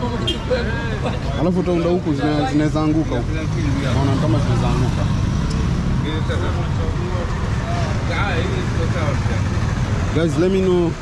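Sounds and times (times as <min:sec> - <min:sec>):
low rumble of traffic: 0:00.0 - 0:11.0
voices talking: 0:00.0 - 0:11.0.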